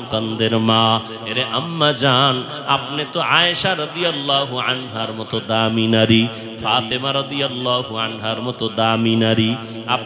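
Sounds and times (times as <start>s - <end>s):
man chanting a sermon: 0.0s - 10.0s.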